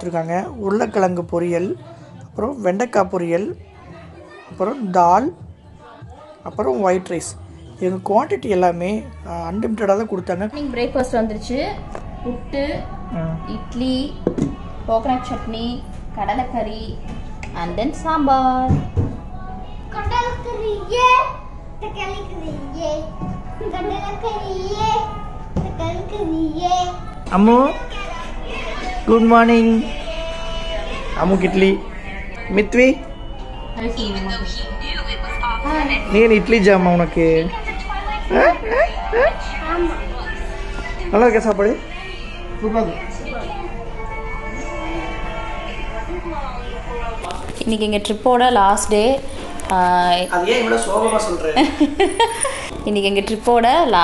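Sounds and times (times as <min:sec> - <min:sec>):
faint background music: 0:00.0 - 0:54.0.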